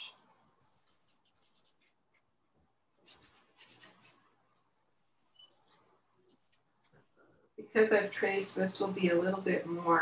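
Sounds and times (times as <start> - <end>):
brush strokes on paper: 0.4 - 4.8.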